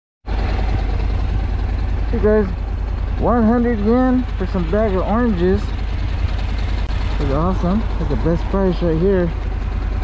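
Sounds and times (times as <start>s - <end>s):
motorcycle engine idling: 0.3s - 10.0s.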